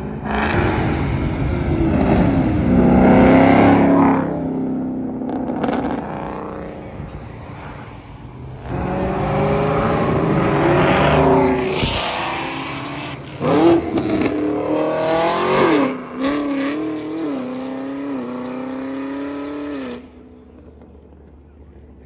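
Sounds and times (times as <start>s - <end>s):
car engine revving hard: 0.0s - 4.5s, 8.6s - 20.1s
car passing by: 6.4s - 13.7s.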